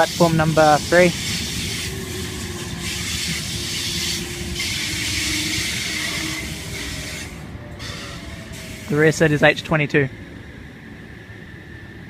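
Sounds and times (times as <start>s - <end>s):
train rolling with rushing hiss: 0.0s - 12.0s.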